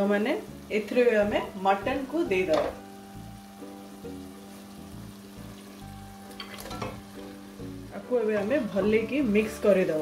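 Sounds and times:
faint frying sizzle: 0.0s - 10.0s
soft background music: 0.0s - 10.0s
meat clattering into pot: 6.4s - 7.1s.

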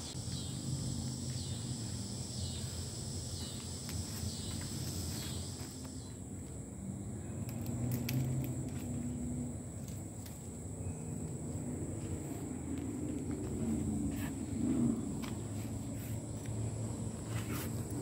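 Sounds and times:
high-pitched insect drone: 0.0s - 7.2s.

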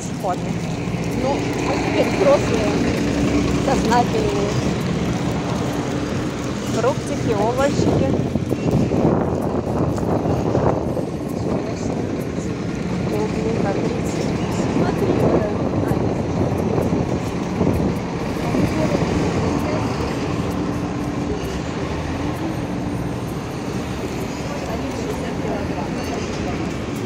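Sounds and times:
low engine hum: 0.0s - 27.0s
vehicles passing on road: 0.0s - 27.0s.

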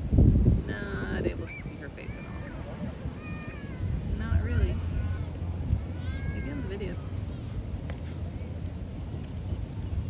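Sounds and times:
steady low rumble: 0.0s - 10.0s
distant high-pitched voices calling: 1.2s - 7.6s.

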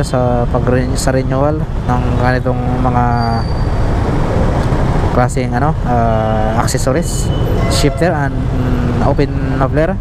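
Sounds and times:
person's voice: 5.2s - 10.0s.

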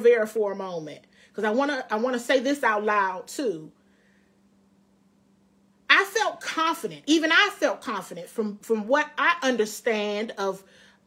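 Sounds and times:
woman speaking: 0.0s - 3.8s, 5.9s - 10.8s
faint low hum: 0.0s - 11.0s.

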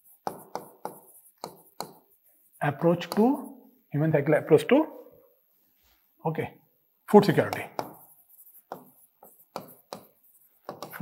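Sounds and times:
marker writing on whiteboard: 0.0s - 3.8s, 7.1s - 11.0s.

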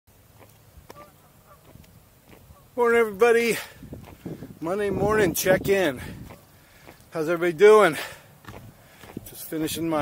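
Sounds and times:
short bird calls: 0.9s - 1.8s.

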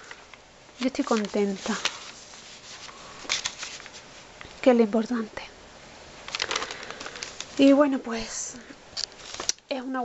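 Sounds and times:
paper page rustling: 0.8s - 4.3s, 6.2s - 7.7s, 9.0s - 9.6s.

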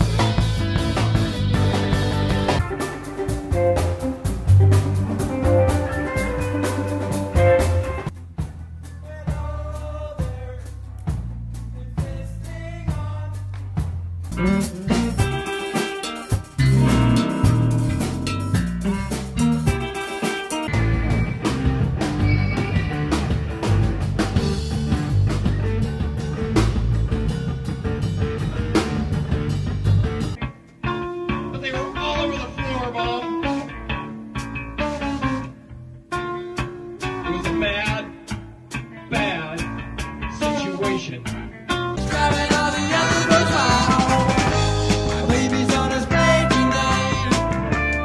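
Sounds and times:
electric guitar: 0.0s - 8.2s, 14.3s - 48.0s
bass and drums: 0.0s - 48.0s.

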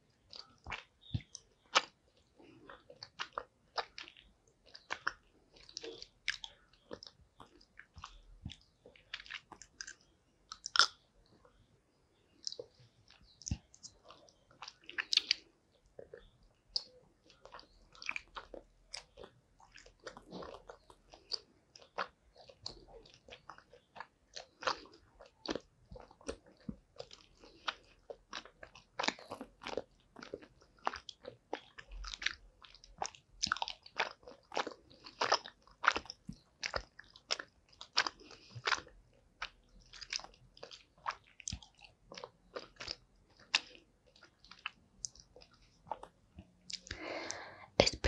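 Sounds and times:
chewing gummy candy: 0.0s - 11.6s, 12.3s - 48.0s.

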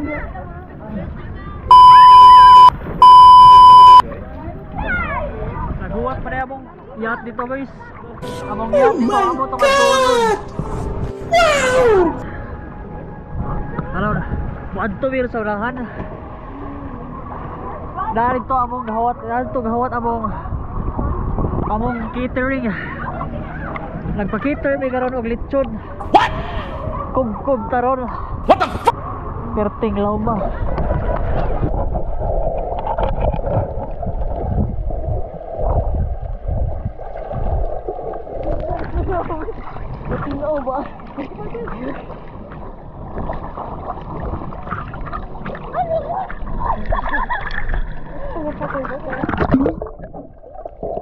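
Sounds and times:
high falling cries: 8.2s - 12.2s
quiet background music: 8.2s - 17.8s
underwater rumble and gurgling: 12.2s - 51.0s.

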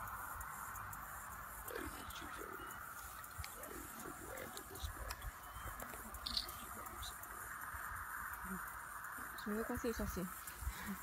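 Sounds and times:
high-pitched outdoor drone: 0.0s - 11.0s.

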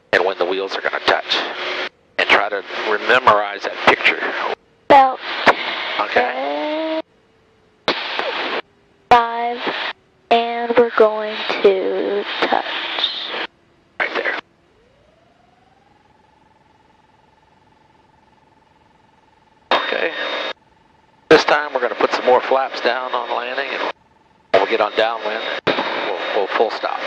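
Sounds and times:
faint aircraft engine tone: 0.0s - 27.0s
voices over headset intercom: 0.1s - 1.6s, 2.2s - 7.0s, 9.1s - 14.4s, 19.7s - 20.5s, 21.3s - 27.0s.

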